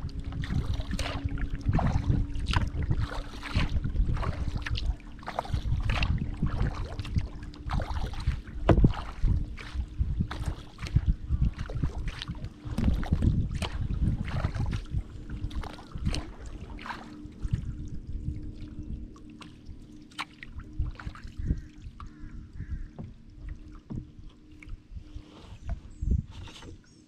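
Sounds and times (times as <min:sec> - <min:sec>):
kayak paddle strokes: 0:00.0 - 0:17.6, 0:19.2 - 0:27.0
wind buffeting microphone: 0:00.0 - 0:19.9, 0:20.5 - 0:27.0
water splashing and dripping: 0:00.0 - 0:24.8
faint steady hum: 0:00.0 - 0:26.3.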